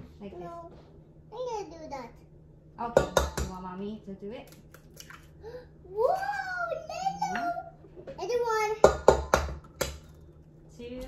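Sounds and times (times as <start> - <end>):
child's voice: 1.3 - 2.2, 5.9 - 9.0
egg knocking on steel bowl: 2.9 - 3.6, 8.8 - 10.2.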